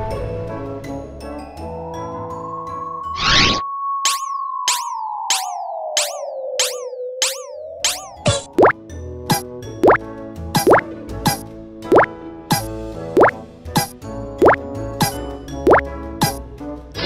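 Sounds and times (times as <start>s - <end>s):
cheerful children's music: 0.0s - 3.0s, 8.2s - 17.0s
cartoon plop sound effects: 4.1s - 10.0s, 10.6s - 16.4s.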